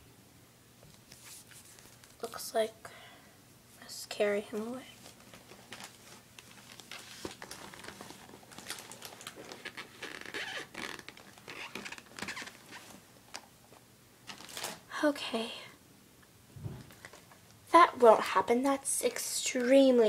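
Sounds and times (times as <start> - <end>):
cloth rustling: 1.0 - 2.2, 5.0 - 13.1.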